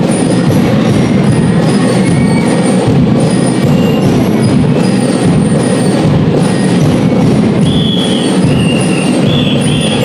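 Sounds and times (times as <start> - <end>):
high ringing lyre notes: 0.0 - 10.0
steady drum beat: 0.0 - 10.0.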